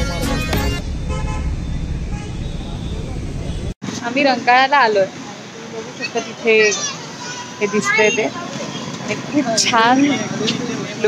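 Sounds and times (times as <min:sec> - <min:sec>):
road traffic rumble: 0:00.0 - 0:11.0
vehicle horn tooting: 0:01.0 - 0:02.7.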